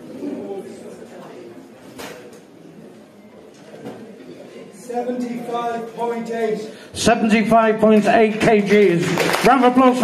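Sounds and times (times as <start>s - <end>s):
murmur of a hall: 0.0s - 10.0s.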